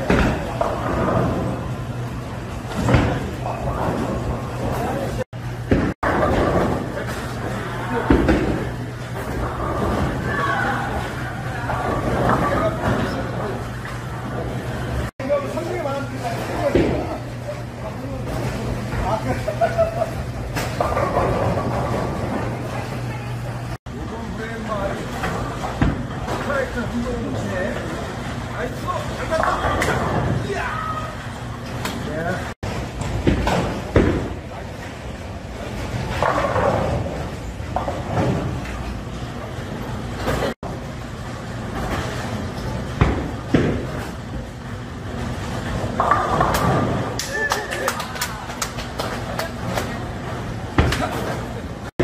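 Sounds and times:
bowling balls rolling: 0.0 - 52.0
people talking: 10.3 - 13.7, 15.2 - 20.3, 22.5 - 25.5, 26.3 - 31.2, 32.0 - 32.6, 47.2 - 50.1.

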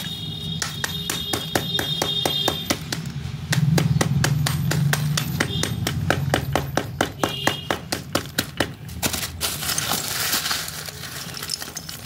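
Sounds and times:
hammer pounding clay shards: 0.6 - 12.0.

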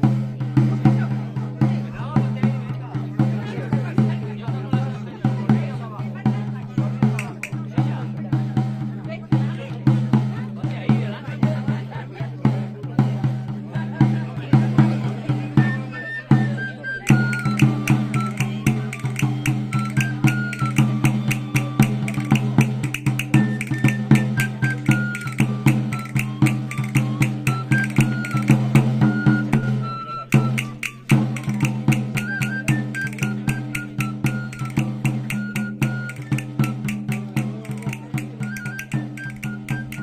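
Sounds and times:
steady drum beat: 0.0 - 40.0
high pipe melody: 17.1 - 37.6.

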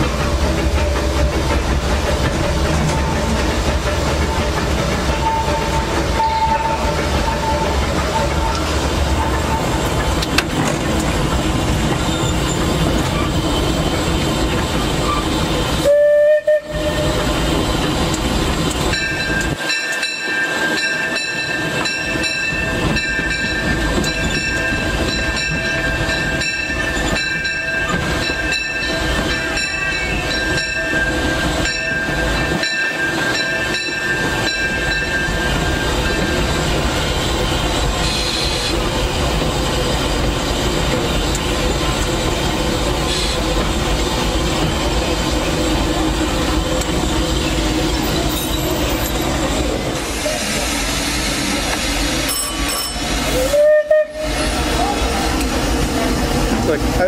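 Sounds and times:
steam locomotive rumble: 0.0 - 57.0
steam whistle blast: 5.2 - 8.7, 15.8 - 17.1, 53.3 - 54.6.

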